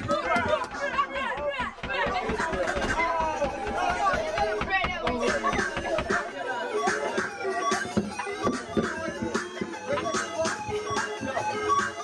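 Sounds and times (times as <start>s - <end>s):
young people talking and calling out: 0.0s - 12.0s.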